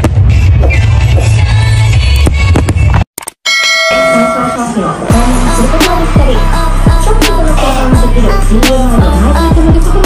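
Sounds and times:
bell-like chime: 3.5 - 4.8.

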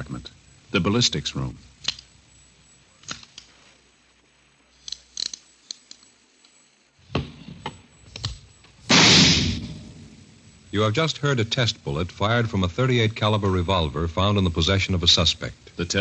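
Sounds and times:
revolver gunshot: 8.9 - 10.2.

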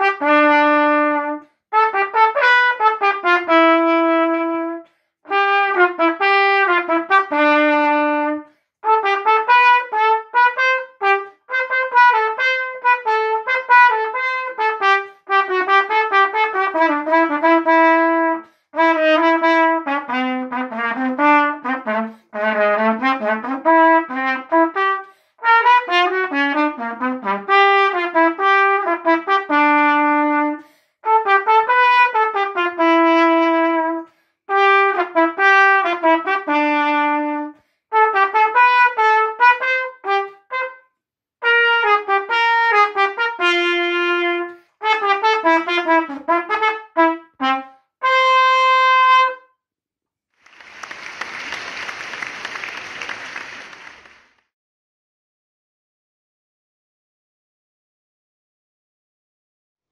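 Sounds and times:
solo trumpet melody: 0.0 - 40.8, 41.4 - 49.4.

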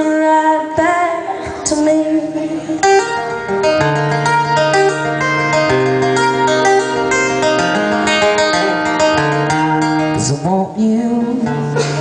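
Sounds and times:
person singing: 0.0 - 5.7, 8.1 - 12.0
acoustic guitar strumming: 0.0 - 12.0.

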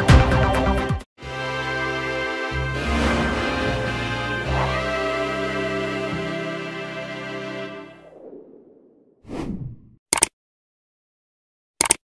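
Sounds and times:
outro music: 0.0 - 8.3.

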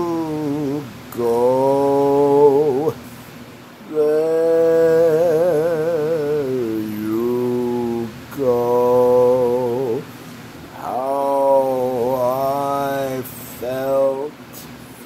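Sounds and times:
man singing unaccompanied: 0.0 - 3.0, 3.8 - 10.1, 10.7 - 14.7.

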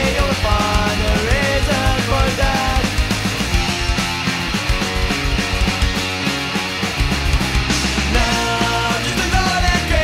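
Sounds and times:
electric guitars: 0.0 - 10.0
fast drum beat: 0.0 - 10.0.

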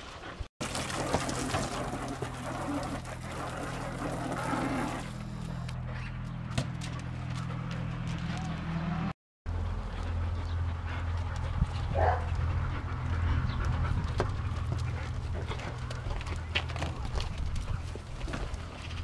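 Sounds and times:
dogs moving about: 0.6 - 8.7, 9.9 - 19.0
dogs panting: 1.6 - 9.1, 9.7 - 19.0.

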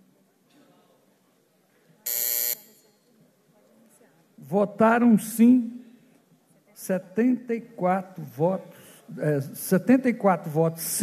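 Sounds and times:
electronic buzzer: 2.1 - 2.8.

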